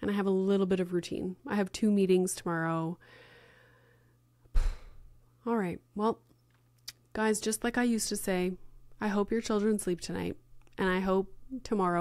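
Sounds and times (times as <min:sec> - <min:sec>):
breath thump on microphone: 0:04.5 - 0:05.1.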